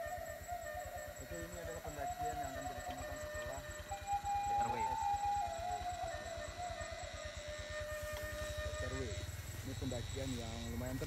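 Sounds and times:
motorcycle engine pulsing: 0.0s - 11.0s.

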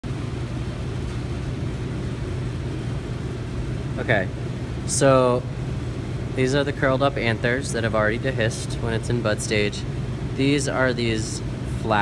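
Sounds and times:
ventilation machinery hum: 0.0s - 12.0s.

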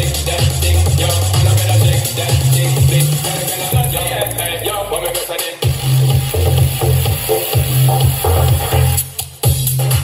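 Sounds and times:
electronic dance music from speaker: 0.0s - 10.0s.

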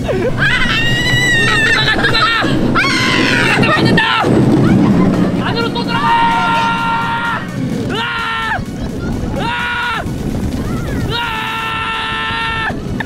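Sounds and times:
carts rumbling on concrete track: 0.0s - 13.0s.

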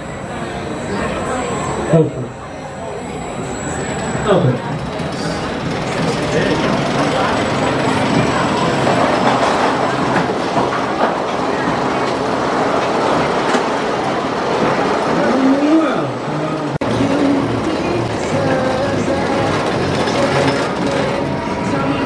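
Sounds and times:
roller coaster train rolling: 0.0s - 22.0s.

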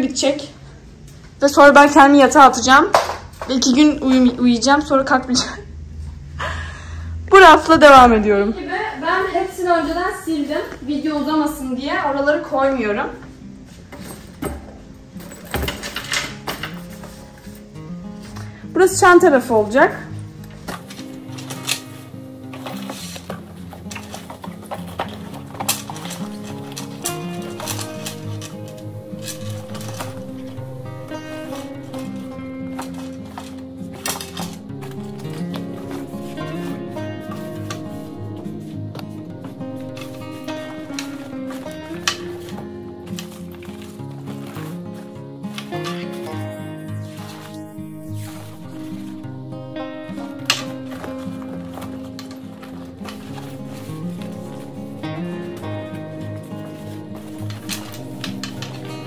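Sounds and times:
background music: 7.1s - 59.0s.

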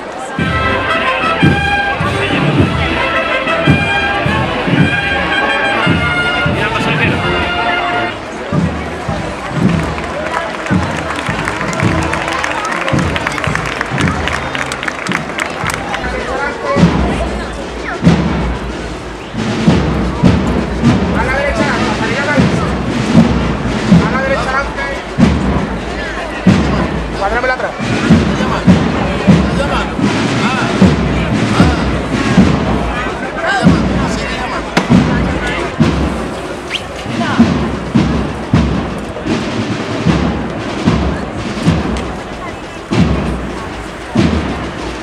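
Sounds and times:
crowd voices: 0.0s - 45.0s
marching band playing: 0.1s - 45.0s
bass drum striking: 15.1s - 45.0s.

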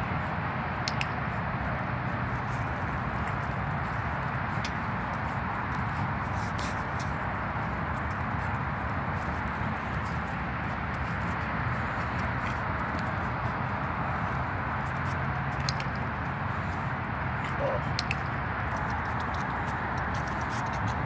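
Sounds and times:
steady rushing noise: 0.0s - 21.0s.

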